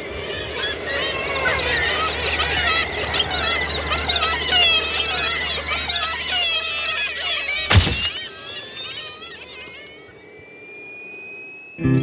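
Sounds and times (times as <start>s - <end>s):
flock of birds calling: 0.0s - 9.6s.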